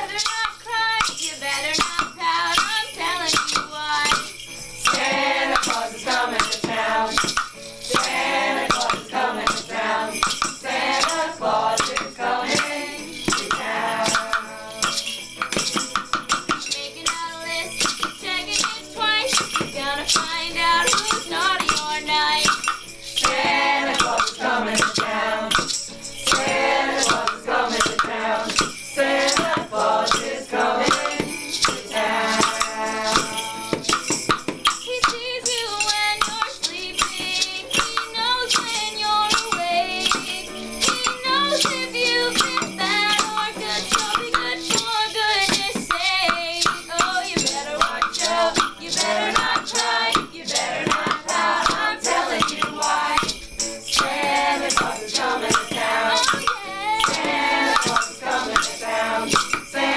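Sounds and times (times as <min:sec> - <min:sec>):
shaken hand percussion: 0:00.0 - 0:59.9
strummed ukulele and guitar: 0:00.0 - 0:59.9
group singing: 0:04.8 - 0:15.6, 0:17.8 - 0:34.0, 0:39.4 - 0:59.9.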